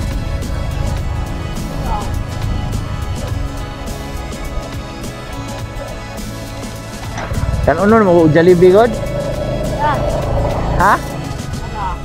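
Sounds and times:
background music: 0:00.0 - 0:12.0
motorcycle engine running: 0:06.8 - 0:12.0.

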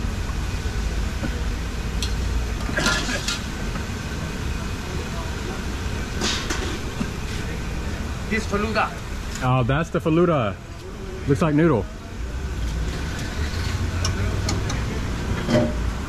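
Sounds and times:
traffic rumble: 0:00.0 - 0:16.0
clinks and knocks: 0:15.4 - 0:15.8.

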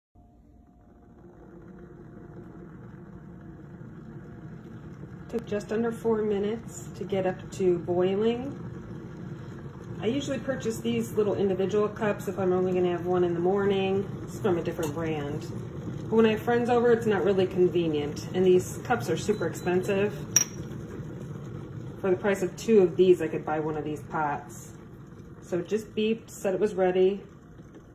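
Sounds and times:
kettle boiling water: 0:00.2 - 0:27.9.

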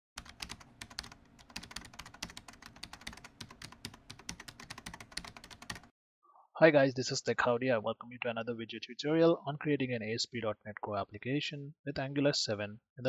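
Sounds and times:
computer keyboard typing: 0:00.2 - 0:05.9.

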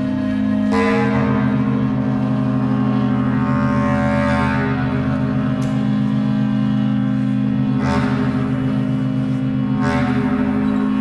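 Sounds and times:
organ and clarinet drone: 0:00.0 - 0:11.0.

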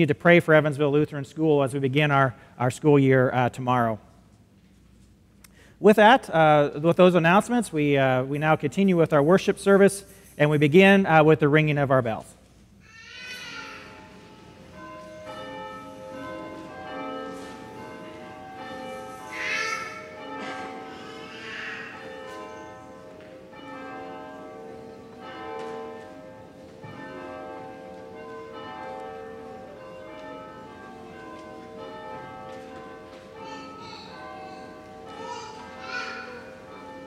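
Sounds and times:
church bells ringing: 0:13.3 - 0:37.0.

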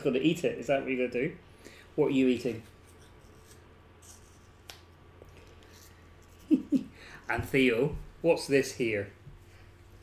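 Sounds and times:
man laughing: 0:06.3 - 0:07.2.

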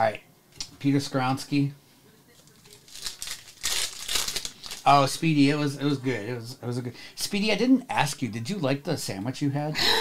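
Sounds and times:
foil wrapper tearing and crinkling: 0:02.5 - 0:05.1.

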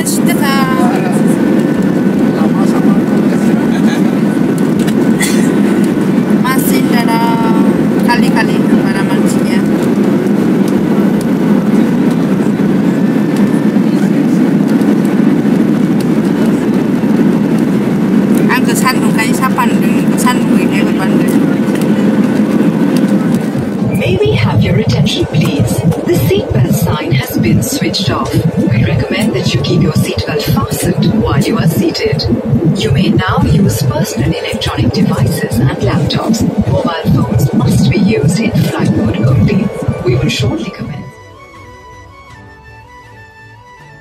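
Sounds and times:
faint steady hum: 0:00.0 - 0:41.2
voices: 0:00.0 - 0:41.4
airliner cabin engine noise: 0:00.0 - 0:44.0.

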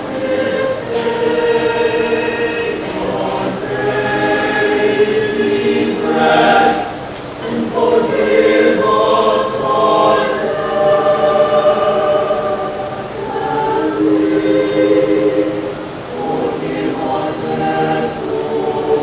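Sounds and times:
mixed choir singing a prayer: 0:00.0 - 0:19.0.

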